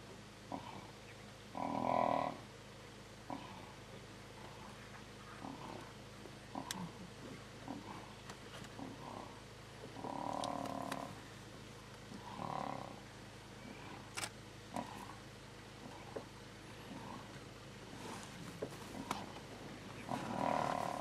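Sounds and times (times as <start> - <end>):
lions growling and snarling: 5.4 - 11.2, 12.1 - 13.0, 13.6 - 21.0.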